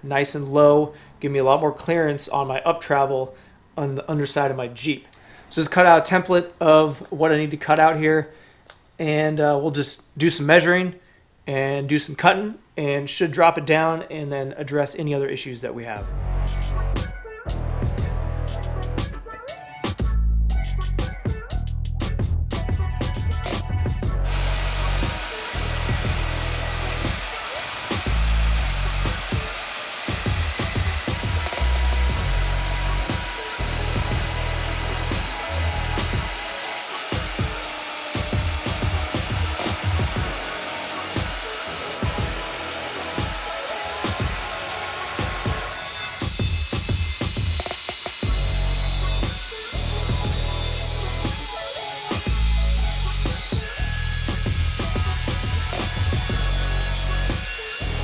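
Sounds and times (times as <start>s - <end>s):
music with heavy bass beat: 16.1s - 19.2s, 19.9s - 58.0s
angle grinder: 24.2s - 58.0s
band saw cutting steel: 24.2s - 58.0s.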